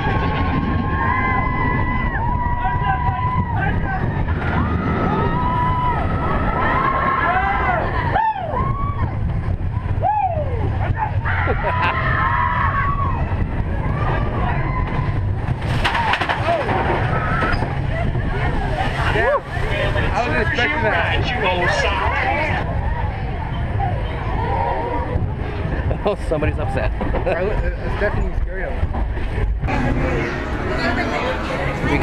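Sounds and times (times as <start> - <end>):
riders screaming: 0.0 - 9.2, 10.0 - 20.7
roller coaster rumbling: 0.0 - 32.0.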